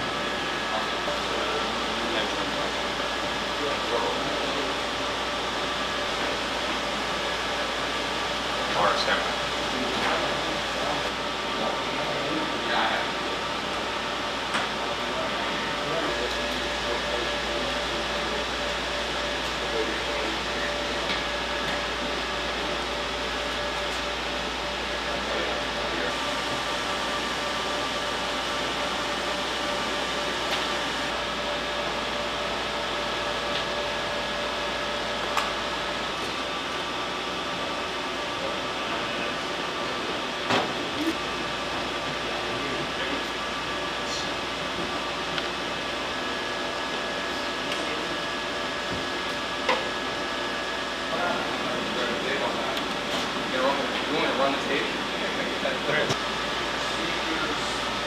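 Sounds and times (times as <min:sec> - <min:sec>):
cooling fans whirring: 0:00.0 - 0:58.0.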